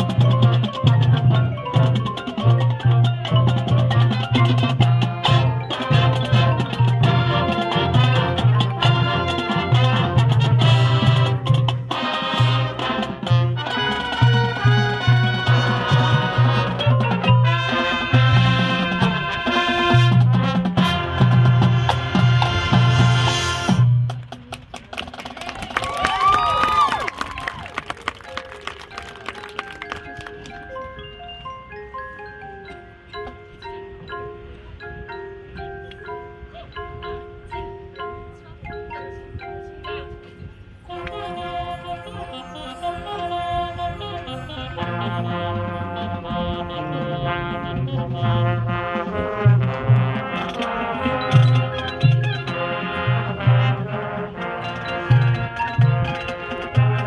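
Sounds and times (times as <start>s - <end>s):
mallet keyboards ringing notes: 0.0s - 24.1s, 27.9s - 57.0s
marching band with heavy drums: 0.0s - 27.0s.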